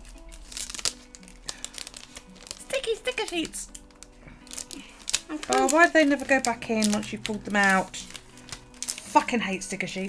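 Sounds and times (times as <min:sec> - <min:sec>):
sticker sheets crinkling: 0:00.0 - 0:09.7
quiet background music: 0:00.0 - 0:10.0.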